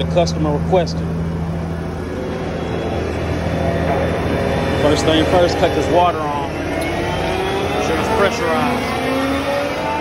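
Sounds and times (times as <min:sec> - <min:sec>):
concrete mixer truck engine running: 0:00.0 - 0:09.9.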